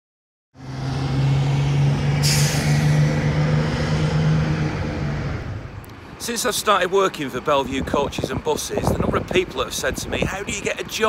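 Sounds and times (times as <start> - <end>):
bus engine humming: 0.6 - 11.0.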